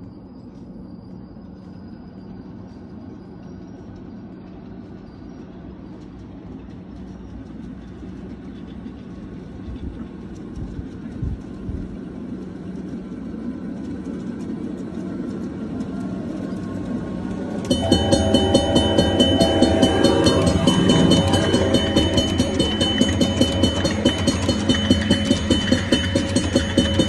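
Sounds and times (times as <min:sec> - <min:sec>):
miniature train rumbling: 0:00.0 - 0:27.0.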